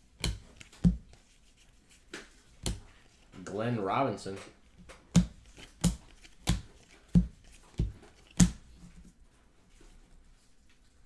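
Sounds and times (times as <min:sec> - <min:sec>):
cards slapping onto desk: 0:00.2 - 0:01.2, 0:04.8 - 0:08.8.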